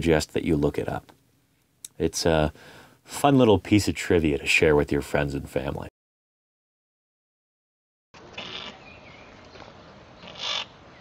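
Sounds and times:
faint background hiss: 0.0 - 5.8.

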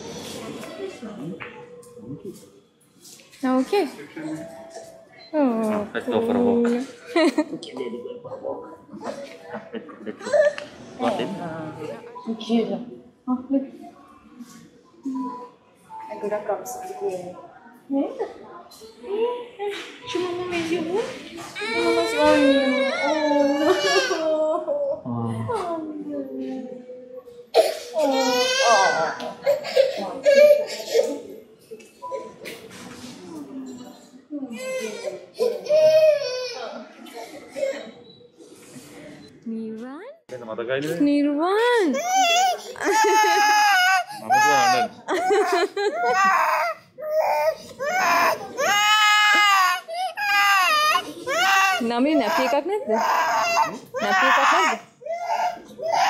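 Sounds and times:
toddler crying: 42.0 - 56.0.

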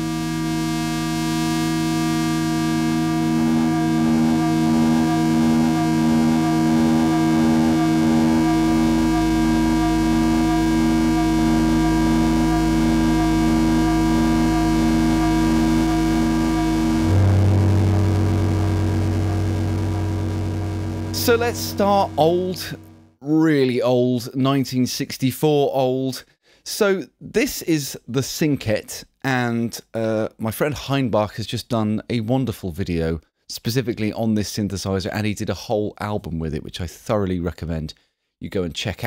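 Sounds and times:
pulsing synthesizer tone: 0.0 - 23.1
synthesizer drone: 0.0 - 23.2.

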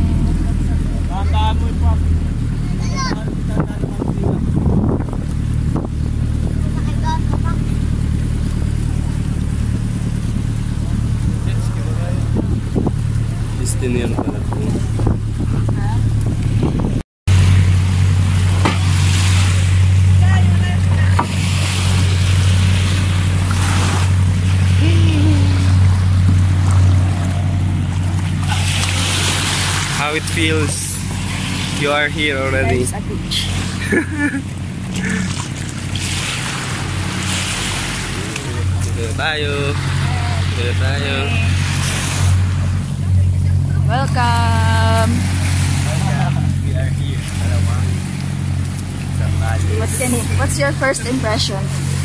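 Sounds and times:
boat engine droning: 0.0 - 52.0
surf: 0.0 - 52.0.

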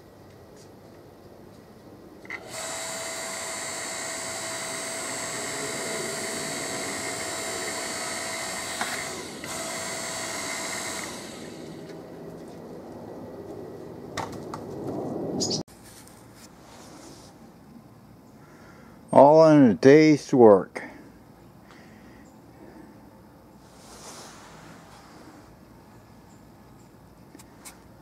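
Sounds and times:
log splitter motor whining: 2.2 - 12.4.

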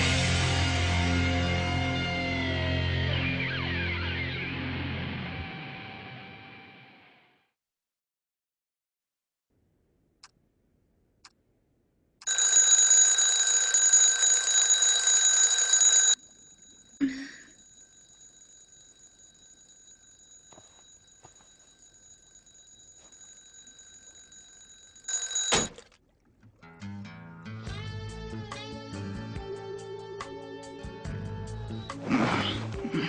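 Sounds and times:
alarm clock ringing: 12.2 - 25.7.

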